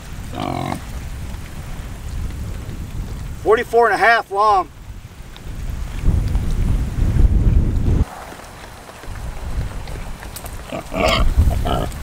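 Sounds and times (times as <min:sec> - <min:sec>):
wind buffeting microphone: 0:00.0 - 0:12.0
pigs grunting: 0:00.2 - 0:00.9, 0:10.6 - 0:12.0.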